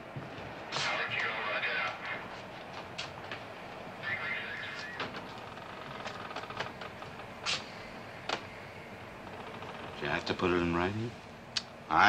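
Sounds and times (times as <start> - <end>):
rumbling background noise: 0.0 - 12.0.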